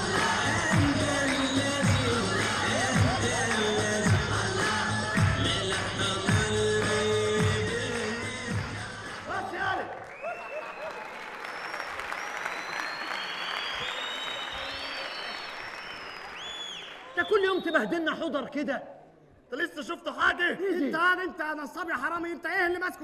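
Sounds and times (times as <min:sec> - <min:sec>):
lively music with steady beat: 0:00.0 - 0:09.5
audience applauding: 0:00.0 - 0:17.7.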